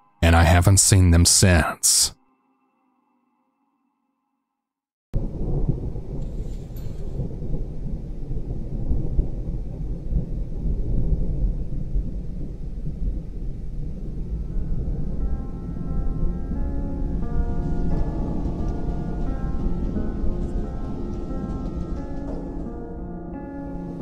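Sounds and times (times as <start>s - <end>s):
heavy rain: 5.2s - 15.2s
deep thunder rumble: 5.2s - 24.0s.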